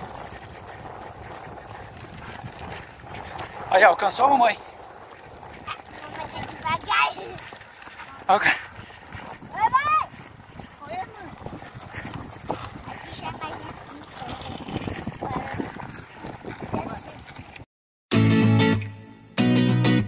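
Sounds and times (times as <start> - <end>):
acoustic guitar music: 18.1 - 20.0.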